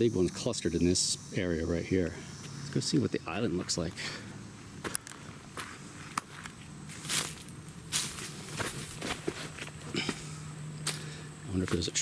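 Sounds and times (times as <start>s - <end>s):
footsteps crunching on dry leaves: 3.4s - 4.2s, 4.8s - 12.0s.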